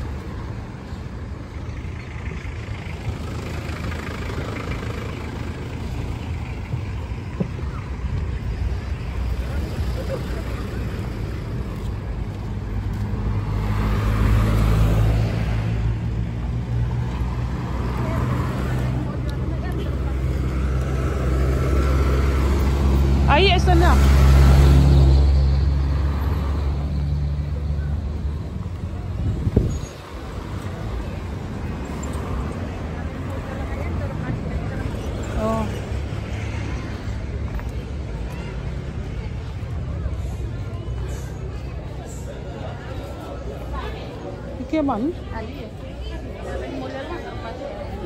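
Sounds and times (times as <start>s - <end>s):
cars and trucks driving past: 0.0s - 48.0s.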